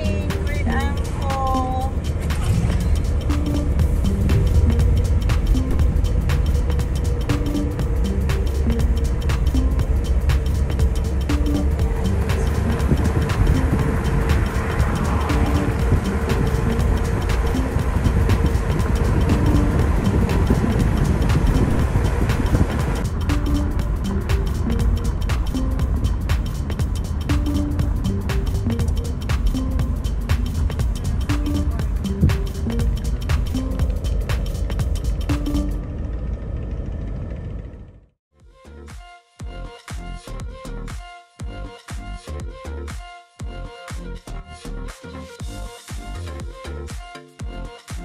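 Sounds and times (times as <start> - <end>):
background music with beat: 0.0 - 35.8, 38.4 - 48.0
car rumbling on highway: 0.0 - 38.2.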